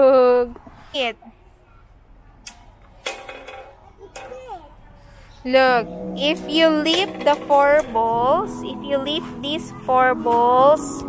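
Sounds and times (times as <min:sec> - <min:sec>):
metal ball knock: 0:06.2 - 0:08.7.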